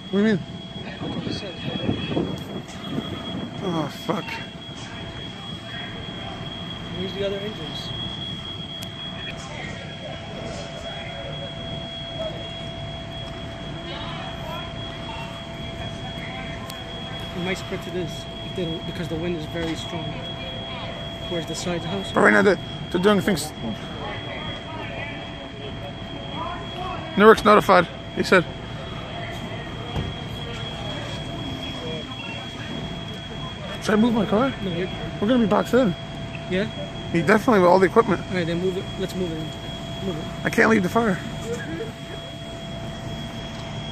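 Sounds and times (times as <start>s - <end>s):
faint voices: 0.0s - 43.9s
fire engines rumbling: 0.0s - 43.9s
high-pitched whine: 0.0s - 43.9s.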